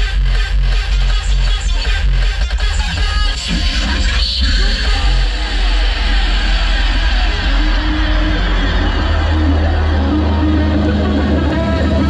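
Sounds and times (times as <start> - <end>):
hardstyle dance music: 0.0 - 12.0.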